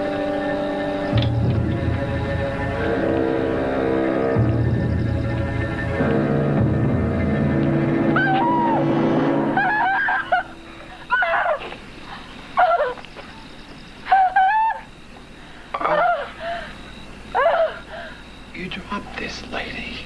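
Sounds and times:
droning scary film music: 0.0 - 20.0.

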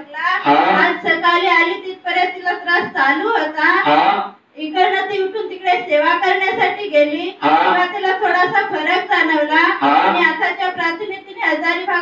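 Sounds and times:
woman speaking into a microphone: 0.0 - 12.0.

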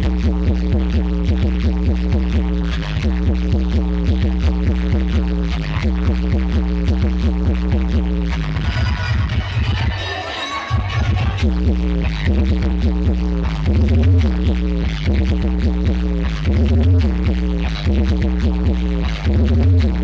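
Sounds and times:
dance music with heavy bass beat: 0.0 - 20.0.

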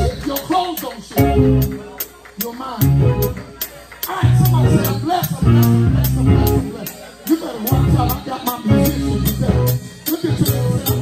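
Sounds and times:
sustained bass line: 0.0 - 0.4, 1.2 - 1.9, 2.8 - 3.4, 4.2 - 6.9, 7.6 - 11.0.

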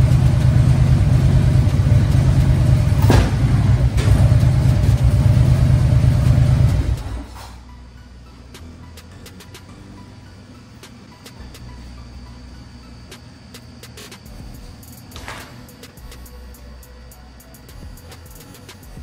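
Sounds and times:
motorcycle engine idling: 0.0 - 7.3.

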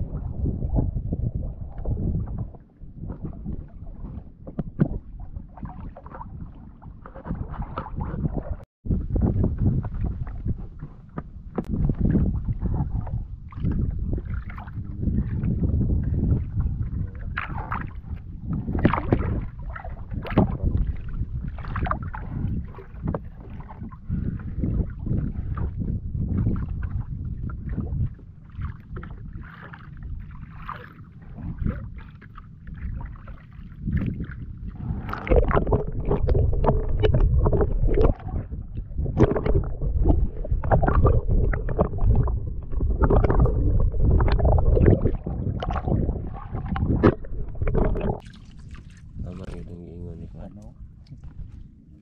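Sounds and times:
water splashing against wooden hull: 0.0 - 52.0.

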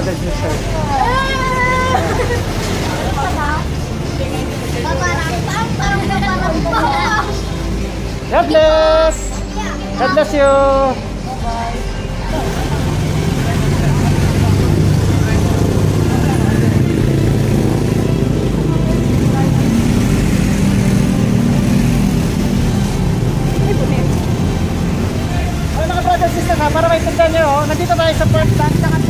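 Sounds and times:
vehicle engine rumbling: 0.0 - 29.0.

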